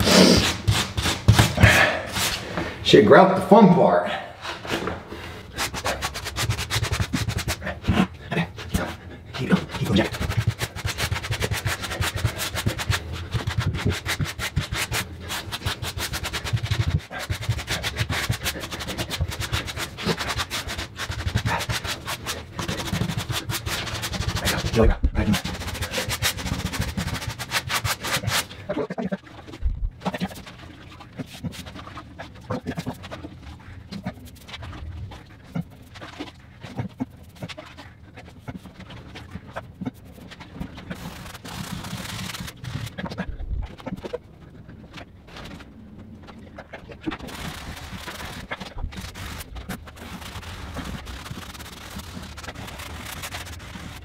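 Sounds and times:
grout float scraping tile floor: 0.0 - 2.8, 4.5 - 29.2, 47.1 - 54.0.

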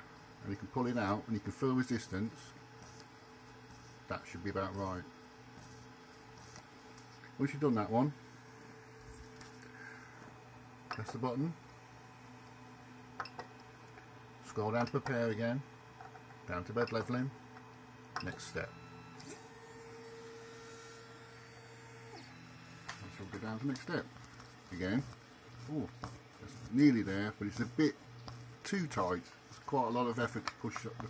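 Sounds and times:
faint low printer hum: 0.0 - 31.0
stepper motor whine: 18.4 - 24.1.

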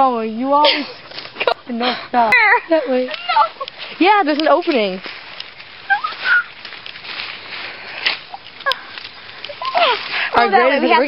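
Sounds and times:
reed stems rustling: 0.0 - 11.0
short high squeaks: 5.8 - 6.6.

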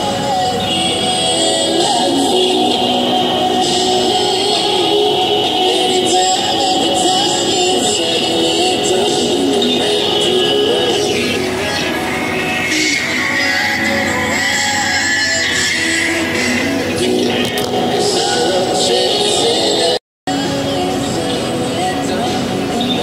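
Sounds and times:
song on radio: 0.0 - 23.0.

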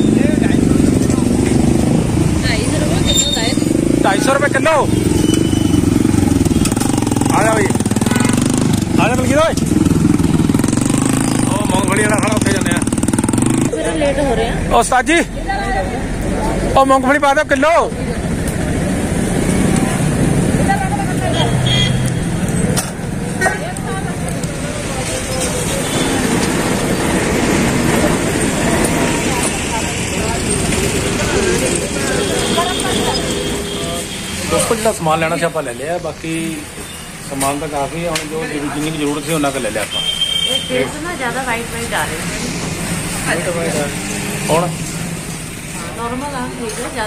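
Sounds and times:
motorcycle engine running: 0.0 - 14.2
traffic noise: 0.0 - 47.0.

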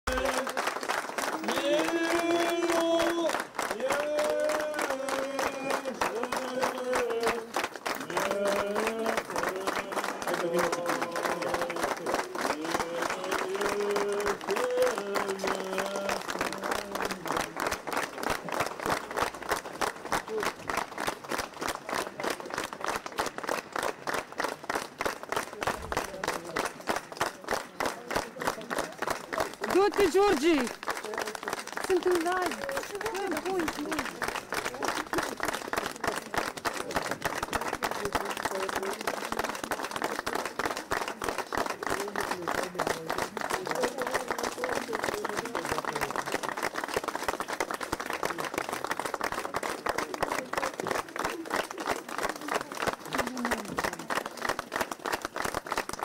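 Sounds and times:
crowd applauding rhythmically: 0.0 - 56.0.

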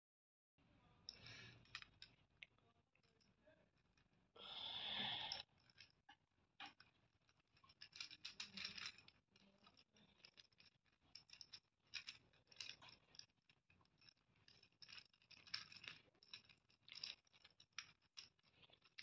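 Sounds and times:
plastic puzzle clicking and rattling: 5.5 - 19.0.

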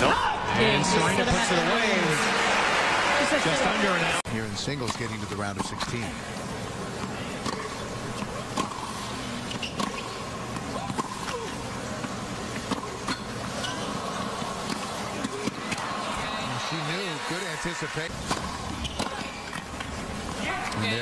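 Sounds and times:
tennis ball bouncing: 7.0 - 11.4, 12.0 - 16.3, 18.1 - 20.0
crowd murmur: 10.2 - 21.0.

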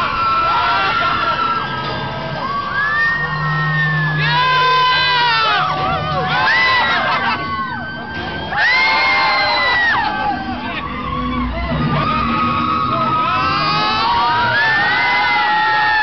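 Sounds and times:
riders screaming: 0.0 - 16.0.

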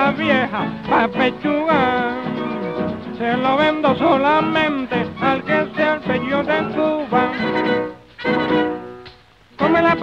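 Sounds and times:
rumba band playing: 0.0 - 10.0.

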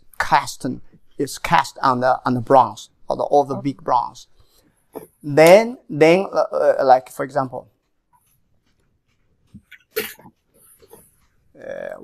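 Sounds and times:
breathing: 4.3 - 5.0.

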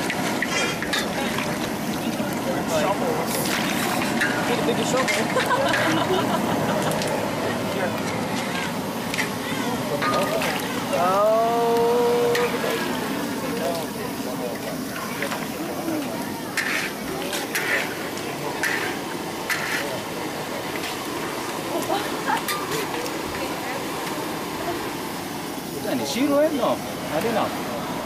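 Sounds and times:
spatula scraping a wok: 0.0 - 1.6, 3.2 - 5.9, 8.0 - 10.8, 16.5 - 20.0
food sizzling in a wok: 0.0 - 28.0
voices talking: 0.5 - 28.0.

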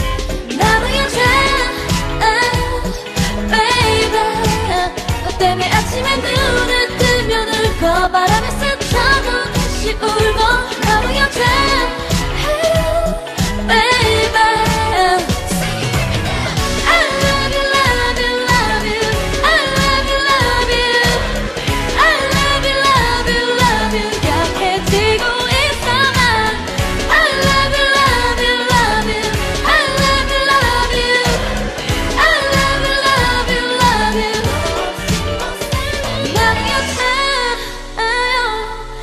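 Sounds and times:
steady dance beat: 0.0 - 37.1
pop song with female vocal: 0.0 - 39.0.

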